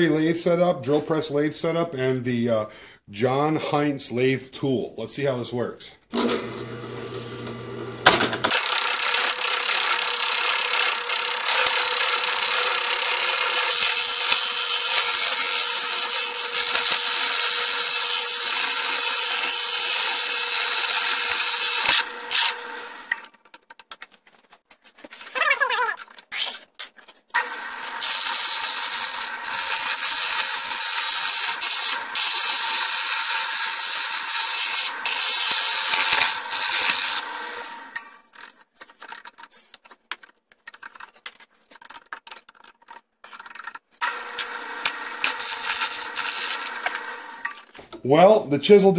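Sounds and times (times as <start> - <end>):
drill press motor hum: 6.1 - 23.3, 27.4 - 38.2, 44.0 - 47.6
chisel scraping spinning wood: 7.4 - 23.3, 27.4 - 41.3, 42.3 - 47.8.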